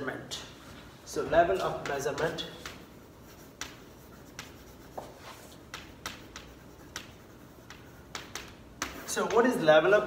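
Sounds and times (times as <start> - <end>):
chalk strokes on a blackboard: 1.4 - 9.6.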